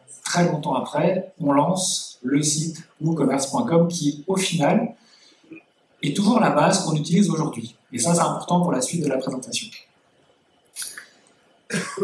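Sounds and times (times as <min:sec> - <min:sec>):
person coughing: 0:11.7 - 0:12.0.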